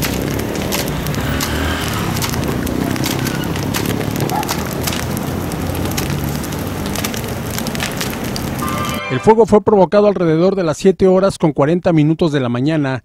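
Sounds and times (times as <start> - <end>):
fire crackling and popping: 0.0 - 9.1.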